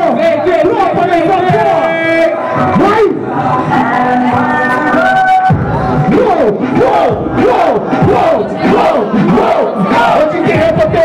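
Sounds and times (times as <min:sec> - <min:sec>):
crowd shouting and cheering: 0:00.0 - 0:11.0.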